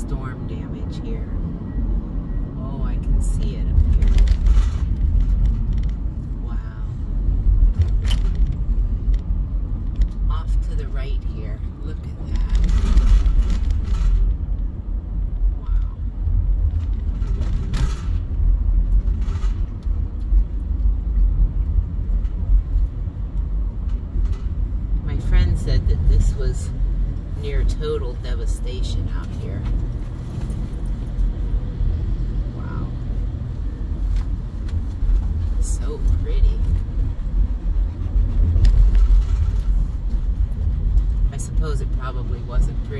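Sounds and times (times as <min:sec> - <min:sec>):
road and engine rumble: 0:00.0 - 0:42.9.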